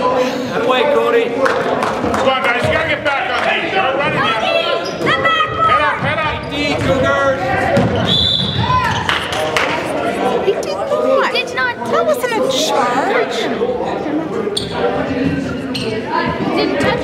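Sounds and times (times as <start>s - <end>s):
voices echoing: 0.0s - 17.0s
sneakers squeaking: 4.2s - 9.4s, 14.5s - 17.0s.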